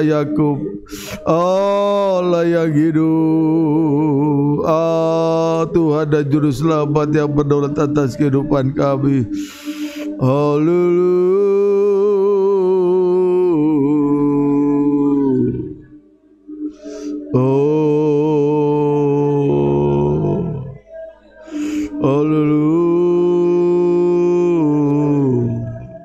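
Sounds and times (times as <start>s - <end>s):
man singing long note: 0.0s - 9.4s, 10.1s - 16.0s, 17.1s - 26.0s.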